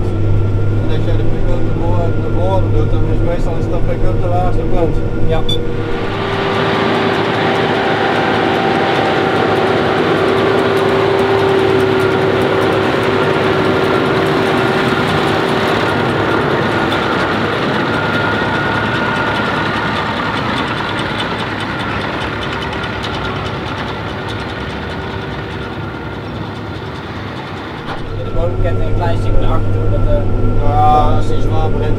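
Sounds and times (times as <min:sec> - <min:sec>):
tractor and loader wagon machinery: 0:00.0 - 0:31.9.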